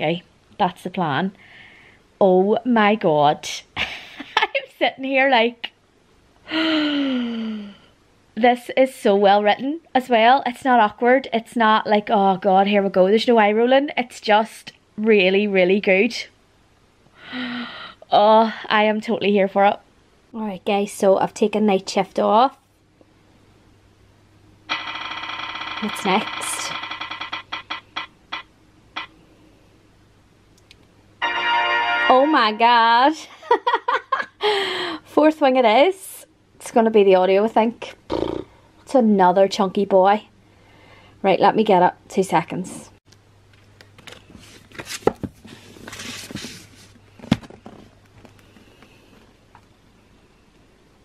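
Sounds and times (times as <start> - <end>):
buzzy rapid ticking from phone: 24.7 - 28.4
book sliding from shelf: 44.4 - 46.9.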